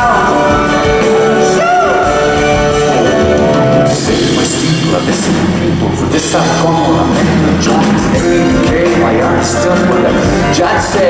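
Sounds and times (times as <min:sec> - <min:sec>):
rock band playing loudly: 0:00.0 - 0:11.0.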